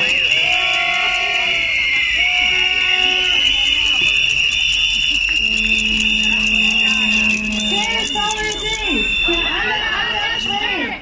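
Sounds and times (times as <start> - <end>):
shrill high-pitched tone: 0.0 - 10.9
protest crowd noise: 0.0 - 11.0
lower steady tone: 5.3 - 9.5.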